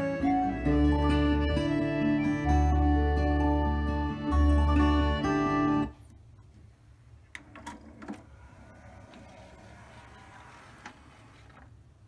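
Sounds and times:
acoustic guitar music on stereo: 0.0s - 6.0s.

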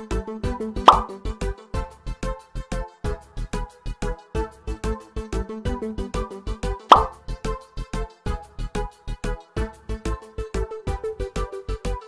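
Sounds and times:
background music with steady beat: 0.0s - 12.0s
rising plop: 0.9s - 1.2s, 6.9s - 7.2s.

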